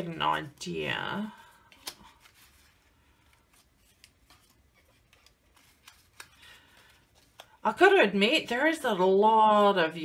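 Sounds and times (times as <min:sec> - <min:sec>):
card pieces rustling and ticking: 0:00.4 - 0:07.6.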